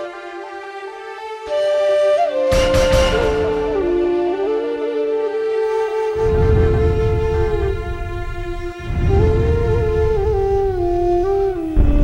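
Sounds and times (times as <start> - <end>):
flute-like melody: 0.0 - 12.0
low rumbling bed: 6.2 - 12.0.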